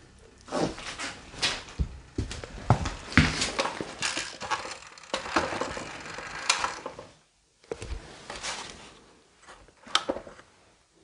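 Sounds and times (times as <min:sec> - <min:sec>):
footsteps: 0:00.5 - 0:04.8.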